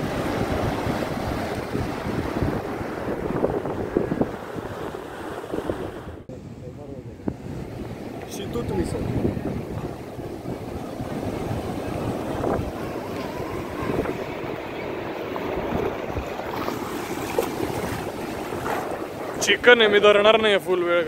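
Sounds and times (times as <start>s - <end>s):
waves breaking on beach: 0.0s - 6.3s, 7.3s - 21.0s
wind buffeting microphone: 0.0s - 21.0s.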